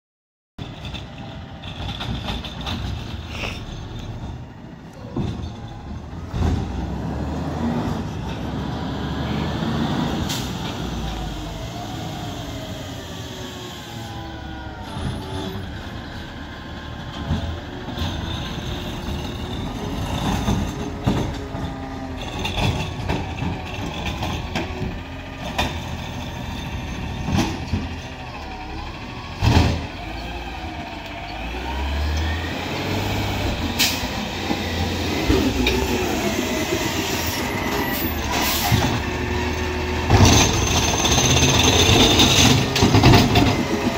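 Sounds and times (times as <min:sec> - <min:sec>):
garbage truck diesel engine revving: 0:05.1 - 0:43.9
air brakes hissing: 0:33.8 - 0:34.2, 0:35.3 - 0:39.0.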